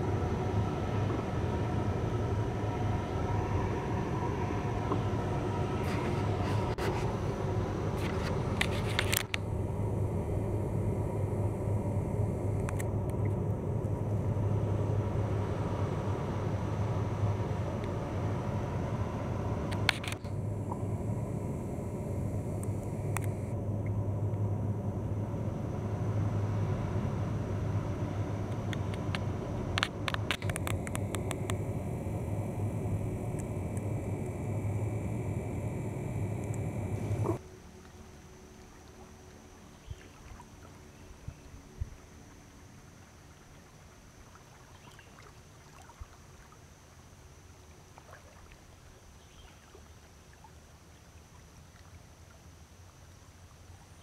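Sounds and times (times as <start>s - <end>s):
boat diesel engines droning: 0.0s - 37.8s.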